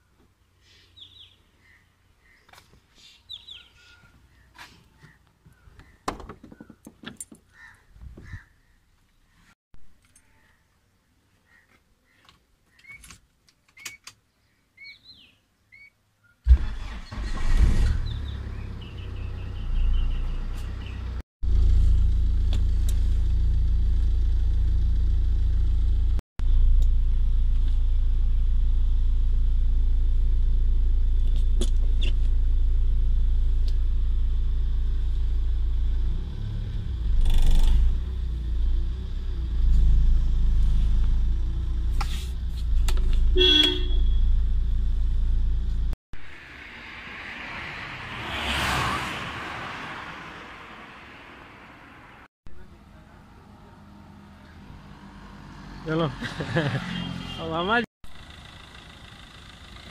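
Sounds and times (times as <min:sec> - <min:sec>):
car horn toot: 0:43.4 - 0:44.3, 0:56.8 - 0:57.7.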